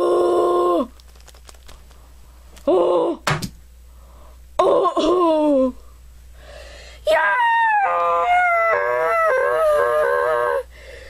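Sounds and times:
high-pitched voice wailing: 7.1s - 10.6s.

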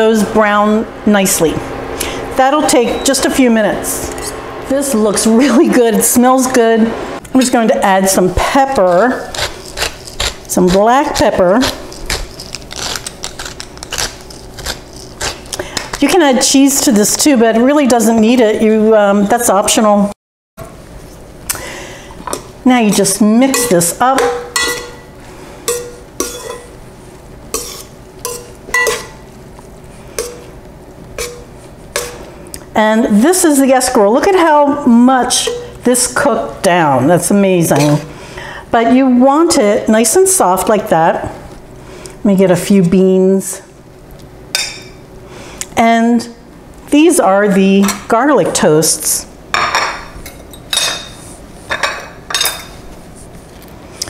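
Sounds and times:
metal tongs clinking on pan: 25.7s - 26.7s, 27.6s - 29.2s.

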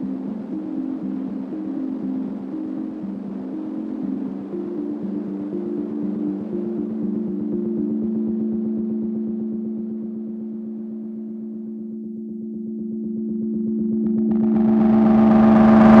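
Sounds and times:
pulsing low synth drone: 0.0s - 16.0s.

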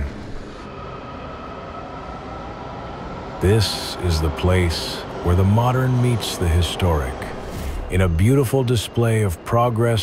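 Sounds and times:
faint high whine: 0.0s - 10.0s
subway train rumble: 0.0s - 10.0s.

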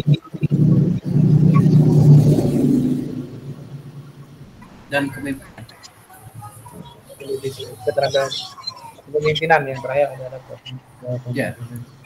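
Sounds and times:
low steady noise: 0.0s - 12.0s.

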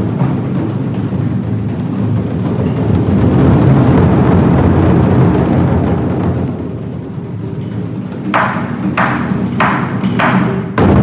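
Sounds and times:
barrel drums rumbling: 0.0s - 11.0s.

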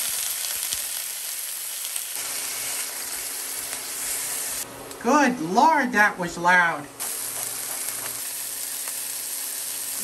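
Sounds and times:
sausage sizzling in a pan: 0.0s - 4.7s, 7.0s - 10.0s.

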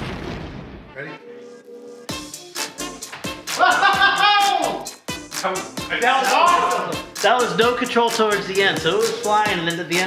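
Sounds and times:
explosion sound effect: 0.0s - 1.0s
background music: 0.6s - 10.0s.

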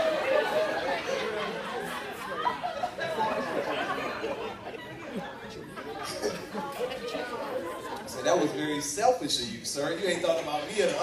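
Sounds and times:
indistinct voices and chatter: 0.0s - 11.0s.

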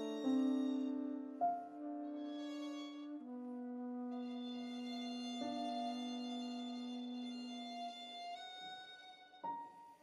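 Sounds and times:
flute violin and piano music: 0.0s - 10.0s.

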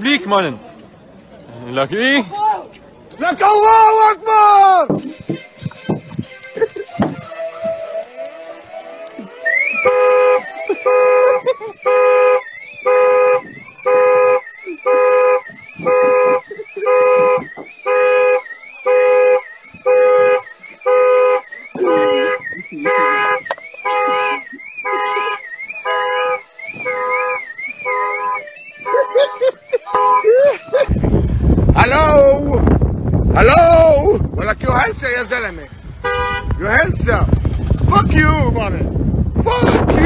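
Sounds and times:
electronic siren warbling: 9.4s - 30.4s
car horn honking: 9.4s - 32.2s, 34.8s - 37.2s.

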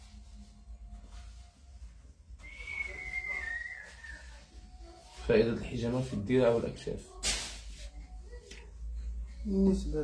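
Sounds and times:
whistled note: 2.4s - 4.4s.

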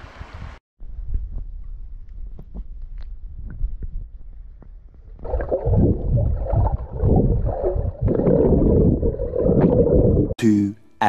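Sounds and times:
underwater rush of water and bubbles: 5.2s - 10.4s.

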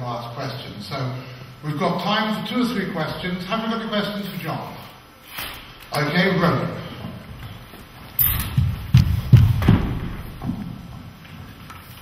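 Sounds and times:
microphone handling thumps: 8.4s - 11.0s.

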